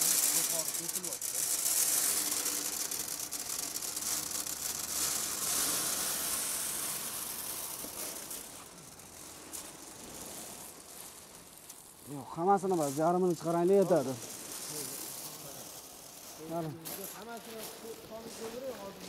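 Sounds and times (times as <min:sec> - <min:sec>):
corn kernels clicking on sheet metal: 0:00.0 - 0:18.8.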